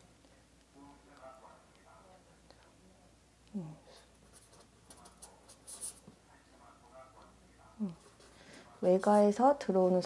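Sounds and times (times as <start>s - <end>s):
pen scratching on paper: 4.2s - 6.1s.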